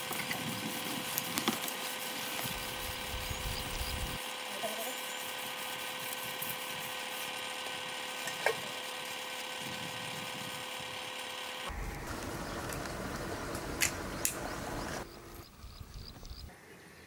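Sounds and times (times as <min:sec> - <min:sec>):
steady machine-like hum: 0:00.0 - 0:16.6.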